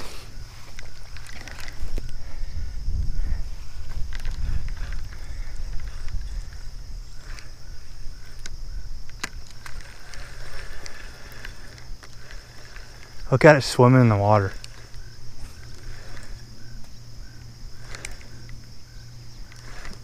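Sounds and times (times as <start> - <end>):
wind buffeting microphone: 0.0 - 20.0
clicks from fishing reel: 3.8 - 13.3, 14.4 - 20.0.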